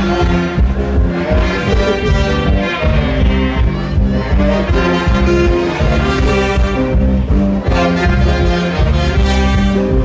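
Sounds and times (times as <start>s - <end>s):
saxophone and brass melody: 0.0s - 10.0s
steady bass beat: 0.0s - 10.0s.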